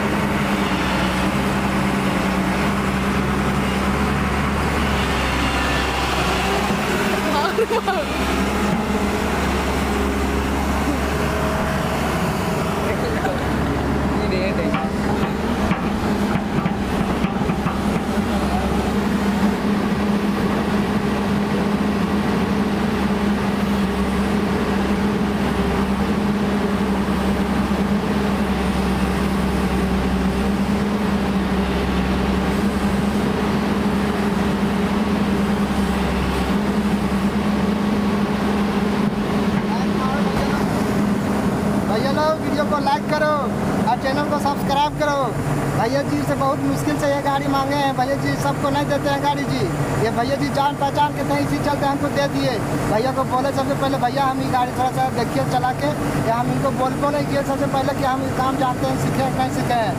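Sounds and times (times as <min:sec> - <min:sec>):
excavator diesel engine humming: 0:00.0 - 0:59.9.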